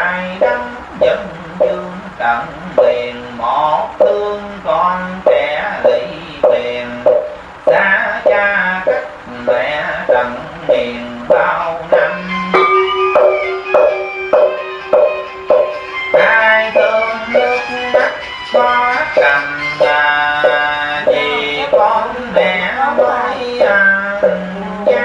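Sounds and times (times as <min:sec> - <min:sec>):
steady beat of strikes: 0:00.0 - 0:25.0
sustained melody: 0:00.0 - 0:25.0.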